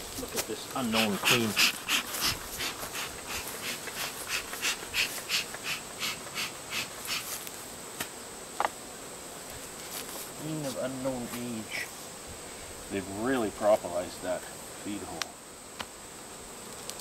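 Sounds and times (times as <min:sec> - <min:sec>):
bellows puffing air: 0:00.8 - 0:07.4.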